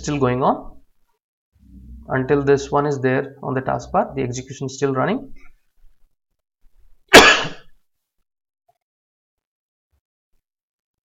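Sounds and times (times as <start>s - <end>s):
man coughing: 7.1s - 7.7s.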